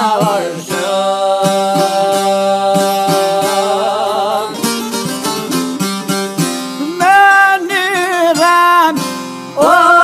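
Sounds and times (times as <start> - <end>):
plucked string instrument: 0.0 - 10.0.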